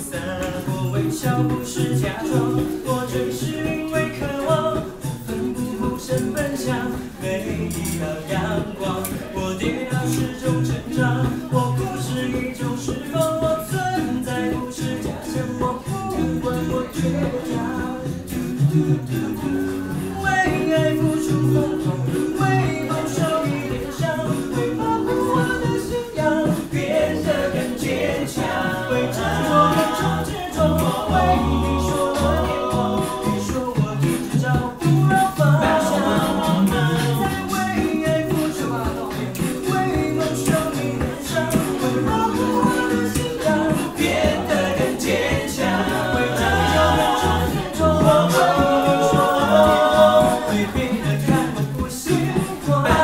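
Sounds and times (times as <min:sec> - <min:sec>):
low vocal bass line: 0:00.0 - 0:53.0
vocal percussion beat: 0:00.0 - 0:53.0
voices singing in close harmony: 0:00.0 - 0:53.0.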